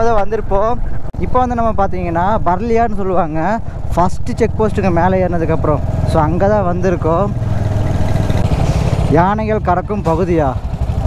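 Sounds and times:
motorcycle engine running at low revs: 0:00.1 - 0:11.0.

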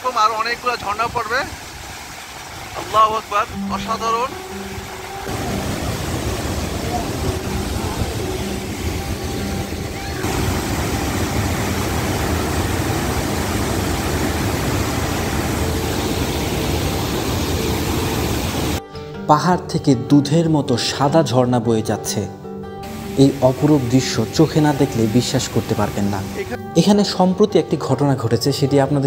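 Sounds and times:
waterfall pouring over rock: 0:00.0 - 0:18.8, 0:22.9 - 0:26.6.

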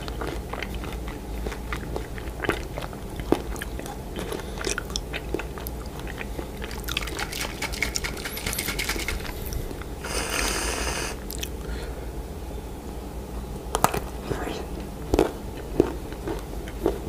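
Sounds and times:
chewing candy: 0:00.0 - 0:11.6, 0:15.1 - 0:17.0.

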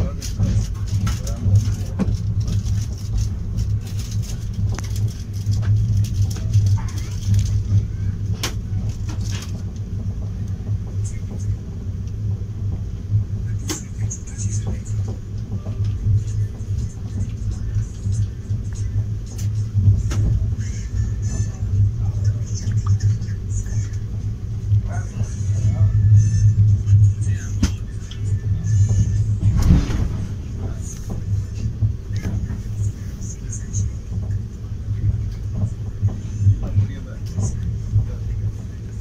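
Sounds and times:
faint indistinct voices: 0:00.0 - 0:39.0
train rumbling: 0:00.0 - 0:39.0.

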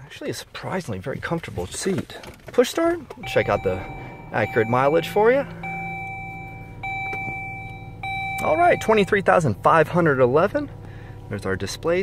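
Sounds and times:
low steady hum: 0:03.0 - 0:12.0
dashboard warning chime: 0:03.2 - 0:09.4.

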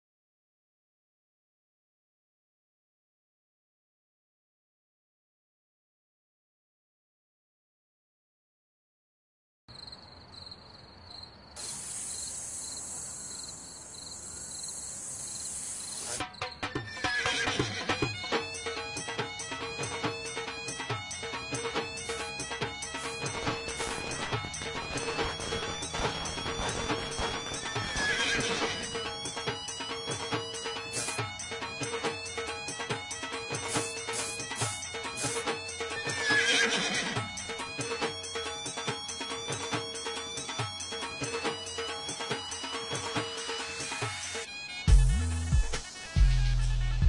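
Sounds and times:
crickets chirping: 0:09.7 - 0:16.8, 0:18.6 - 0:32.4
high insect hiss: 0:09.8 - 0:16.7, 0:18.3 - 0:36.5
music with percussive hits: 0:16.2 - 0:36.4, 0:37.0 - 0:47.0.

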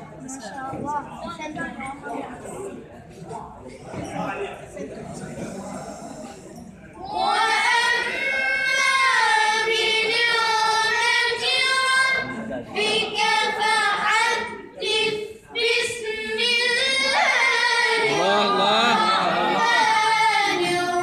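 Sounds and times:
child chanting melodically: 0:15.8 - 0:21.0.

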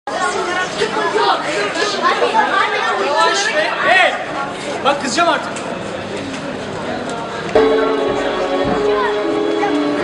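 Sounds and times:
murmur of crowd: 0:00.1 - 0:10.0
music with held notes: 0:07.6 - 0:10.0.

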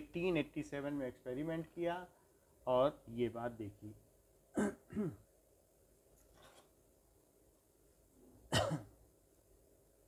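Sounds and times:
person clearing throat: 0:04.5 - 0:05.3, 0:08.5 - 0:09.0.

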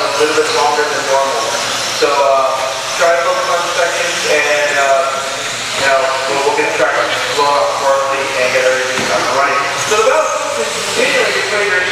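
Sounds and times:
man calling a race: 0:00.0 - 0:11.9.

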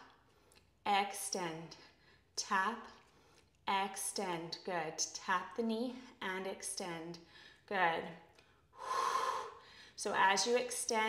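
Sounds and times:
woman breathing: 0:07.2 - 0:07.7, 0:08.4 - 0:10.0.

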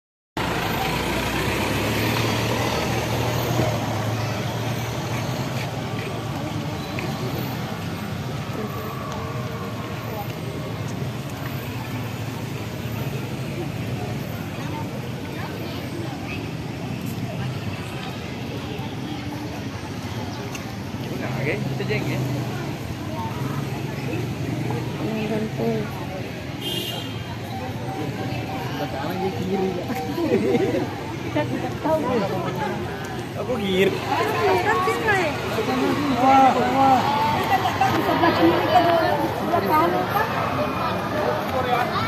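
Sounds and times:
crowd chatter: 0:00.4 - 0:42.0
vehicle engines humming past: 0:00.4 - 0:42.0.

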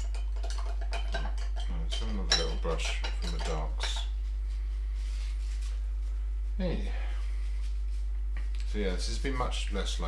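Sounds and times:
painting tools clinking on glass: 0:00.0 - 0:04.1.

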